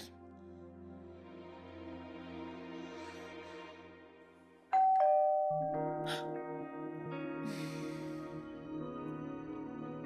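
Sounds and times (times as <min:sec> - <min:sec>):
soft background music: 0:00.0 - 0:10.0
two-tone doorbell ringing: 0:04.8 - 0:06.4.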